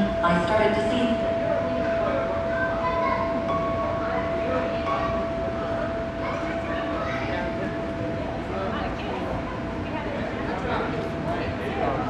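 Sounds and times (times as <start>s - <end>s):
steady pitched hum: 0.0s - 12.0s
children's voices and play: 1.4s - 12.0s.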